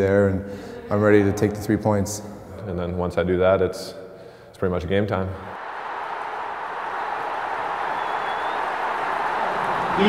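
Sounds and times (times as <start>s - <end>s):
faint high-pitched whistle: 7.9s - 8.7s.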